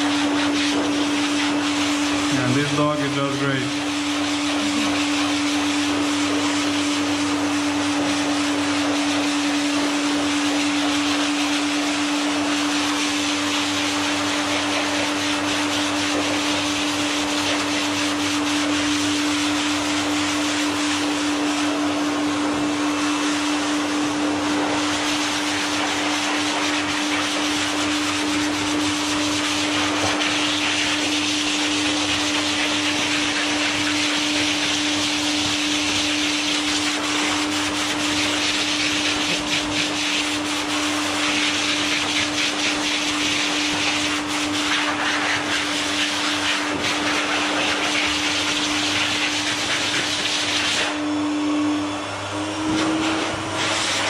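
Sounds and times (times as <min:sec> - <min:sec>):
air rushing from dryer: 0:00.0 - 0:54.0
pet dryer motor hum: 0:00.0 - 0:54.0.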